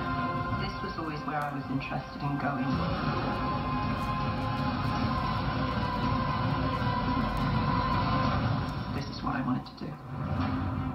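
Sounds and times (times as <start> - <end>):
television background music: 0.0 - 10.9.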